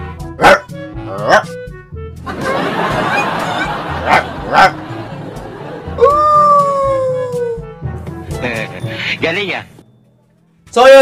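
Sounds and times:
man imitating dog barks: 0:00.4 - 0:01.6, 0:04.0 - 0:04.8, 0:06.0 - 0:07.6
man howling: 0:06.0 - 0:07.7.

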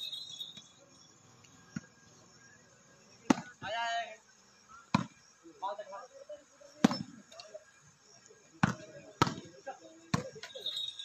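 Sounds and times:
hand slapping volleyball: 0:08.6 - 0:09.4.

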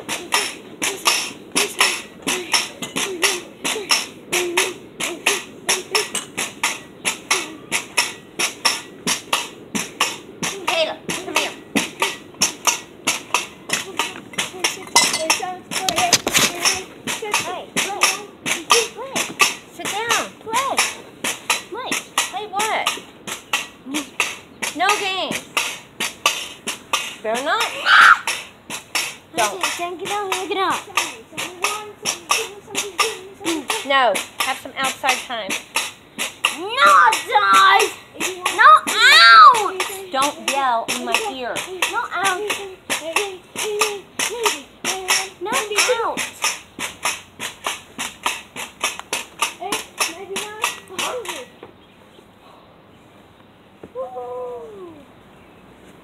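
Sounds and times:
person making wavering sounds: 0:00.0 - 0:06.3, 0:53.9 - 0:55.1
pogo stick bouncing on concrete: 0:00.0 - 0:51.8
child calling out: 0:27.7 - 0:28.3, 0:36.6 - 0:39.8, 0:53.9 - 0:55.1.

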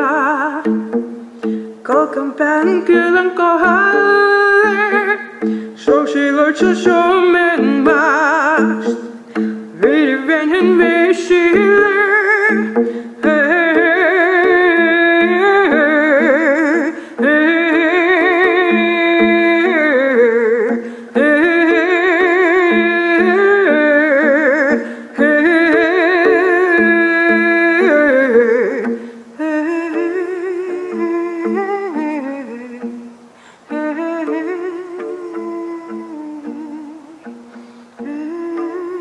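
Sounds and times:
bowed lyre: 0:00.0 - 0:39.0
woman singing with vibrato: 0:00.0 - 0:39.0.

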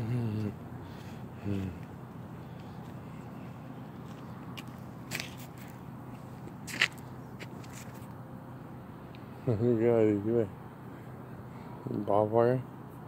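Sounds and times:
low outdoor hum: 0:00.0 - 0:13.0
footsteps on gravel: 0:00.4 - 0:08.1.

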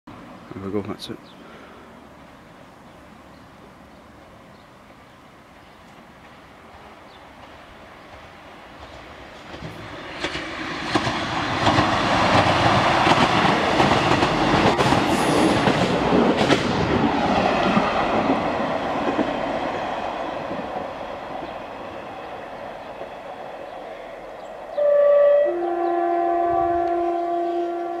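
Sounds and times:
train passing on rails: 0:00.1 - 0:28.0
two-tone train horn: 0:24.7 - 0:28.0.

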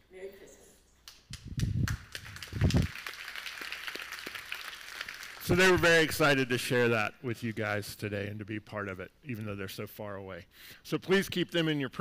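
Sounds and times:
crowd applauding: 0:01.9 - 0:05.9.

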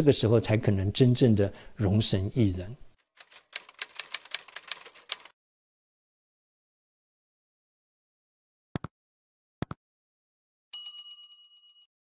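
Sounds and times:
typewriter key clicks: 0:03.2 - 0:05.3.

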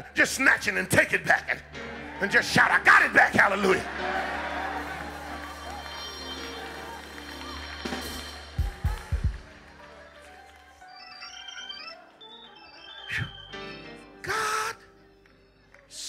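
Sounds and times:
organ playing held chords: 0:01.4 - 0:16.0.

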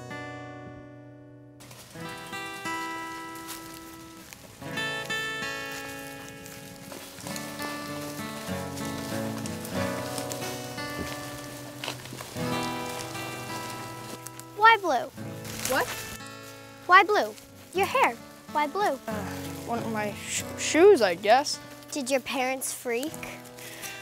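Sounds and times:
acoustic guitar chords: 0:00.0 - 0:24.0.

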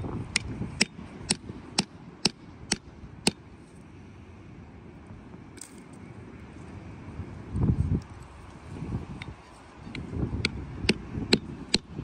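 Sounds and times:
quiet outdoor background noise: 0:00.0 - 0:12.0
low rumble on microphone: 0:04.0 - 0:12.0.

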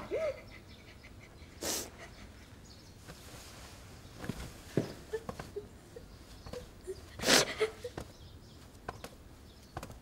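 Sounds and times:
boy sobbing: 0:00.0 - 0:02.3.

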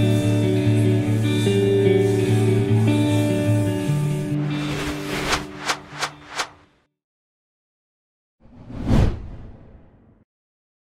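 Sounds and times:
whoosh sound effect: 0:04.4 - 0:06.6.

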